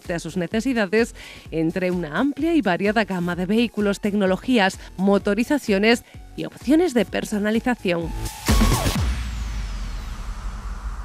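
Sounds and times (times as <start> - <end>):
noisy music wash: 7.7 - 11.0
high falling sweep: 8.3 - 11.0.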